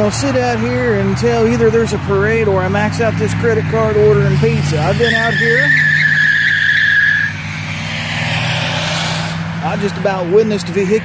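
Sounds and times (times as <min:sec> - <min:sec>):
car speeding past: 0:00.0 - 0:11.0
road noise rush: 0:00.0 - 0:11.0
tyres squealing: 0:02.6 - 0:07.8.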